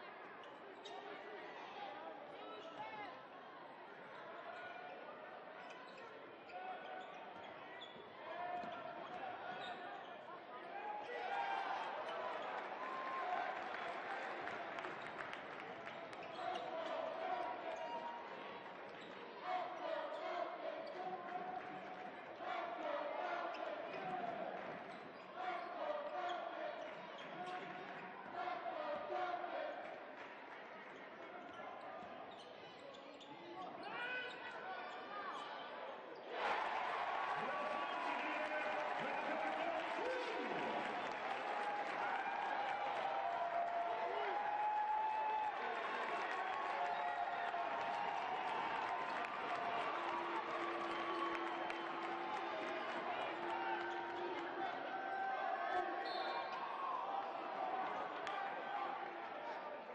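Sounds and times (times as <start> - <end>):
voices in arena: 0.0 - 59.9.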